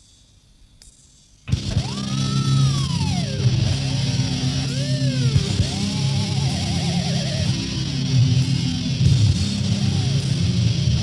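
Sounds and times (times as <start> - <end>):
distorted metal guitar chord: 1.5 - 11.0.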